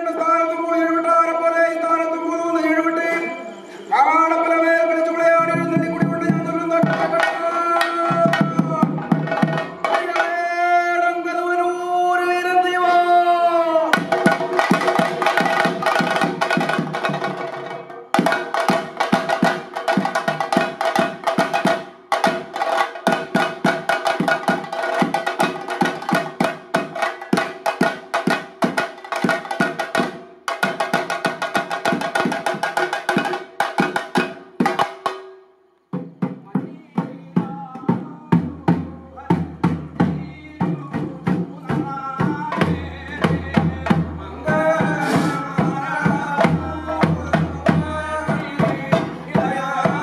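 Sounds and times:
man chanting a song: 0.0s - 28.4s, 36.1s - 50.0s
drums beaten in a fast roll: 5.4s - 10.4s, 13.9s - 35.2s, 36.0s - 50.0s.

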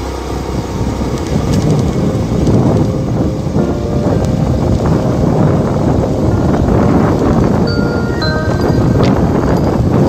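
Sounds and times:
tyres on gravel road: 0.0s - 10.0s
wind buffeting microphone: 0.0s - 10.0s.

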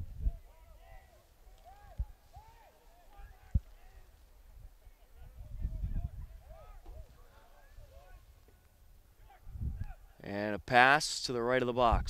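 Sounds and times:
distant people shouting: 0.3s - 4.1s.

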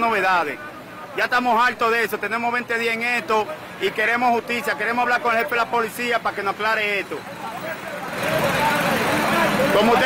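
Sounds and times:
faint voices: 0.0s - 10.0s
traffic rush: 0.0s - 10.0s.

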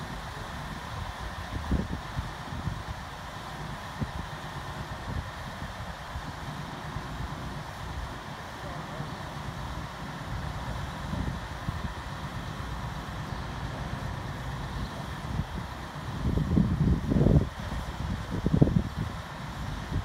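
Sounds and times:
wind gusting on microphone: 0.0s - 8.3s, 9.1s - 20.0s
truck engine running: 6.5s - 17.8s.

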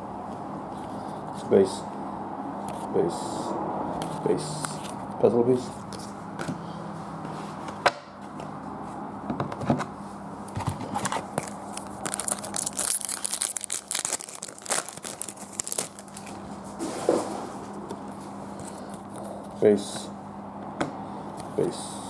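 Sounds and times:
wrapper tearing and crinkling: 11.2s - 16.4s.

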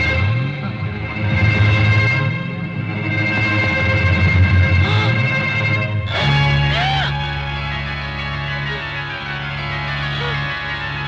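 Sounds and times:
dramatic film music: 0.0s - 11.0s.

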